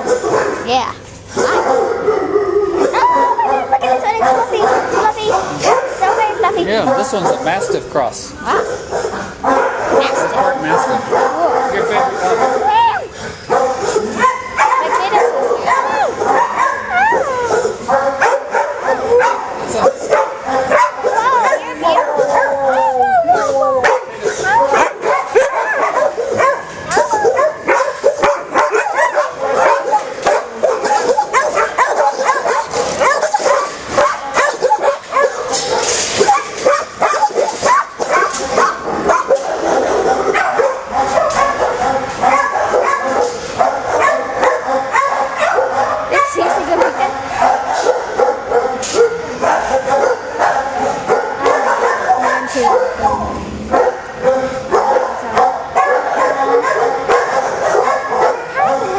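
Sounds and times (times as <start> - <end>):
dogs barking and whining: 0.0 - 58.9.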